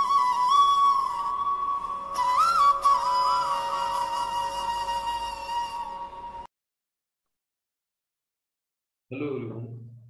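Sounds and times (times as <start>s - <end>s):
solo flute melody: 0.0s - 6.5s.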